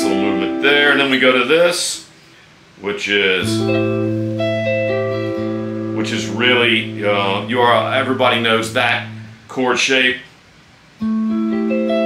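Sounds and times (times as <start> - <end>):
electric guitar chord ringing: 0.0 - 1.5, 3.4 - 9.6, 11.0 - 12.0.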